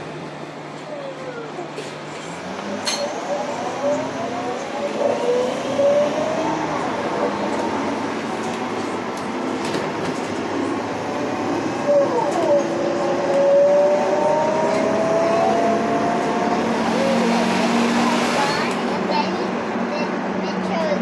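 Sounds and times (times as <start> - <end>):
bus road and engine noise: 0.0 - 21.0.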